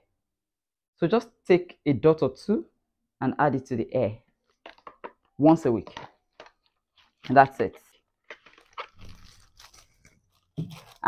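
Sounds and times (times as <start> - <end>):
plastic bottles clicking: 4.3 - 9.4
plastic packaging rustling: 4.4 - 11.0.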